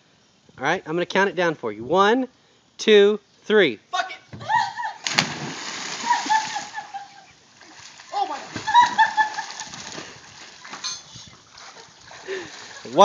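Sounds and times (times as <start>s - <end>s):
splash into pool: 5.0s - 6.9s, 7.6s - 10.9s, 11.5s - 13.0s
churning water: 5.1s - 13.0s.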